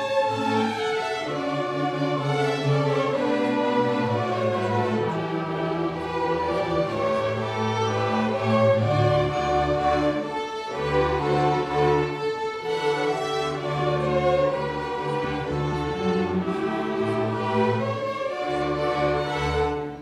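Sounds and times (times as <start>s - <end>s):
string orchestra playing: 0.0s - 20.0s.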